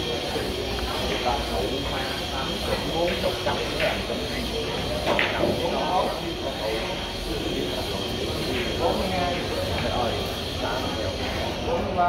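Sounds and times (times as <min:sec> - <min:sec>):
indistinct chatter in a room: 0:00.0 - 0:12.0.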